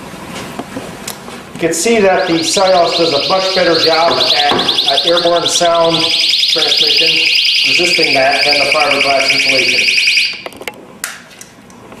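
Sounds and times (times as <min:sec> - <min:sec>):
personal alarm shrieking: 0:01.9 - 0:10.5.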